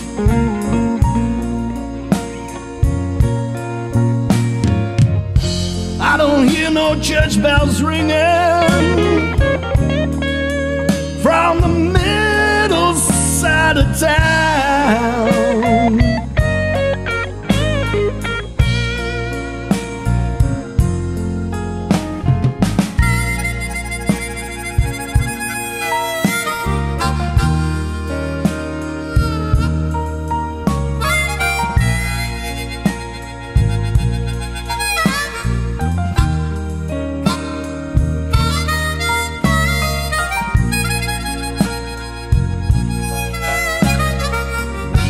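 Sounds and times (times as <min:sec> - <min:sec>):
bass and drums: 0:00.0 - 0:45.0
harmonica long held notes: 0:00.0 - 0:45.0.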